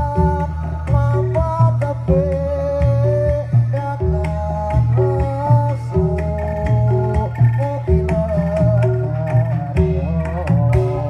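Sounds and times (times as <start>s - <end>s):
repeating drum pattern: 0.0s - 11.0s
wavering melodic line: 0.0s - 11.0s.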